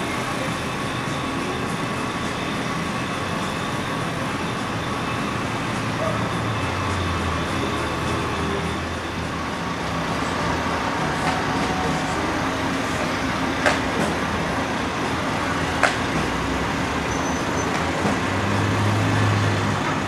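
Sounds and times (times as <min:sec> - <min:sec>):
city traffic noise: 0:00.0 - 0:20.0.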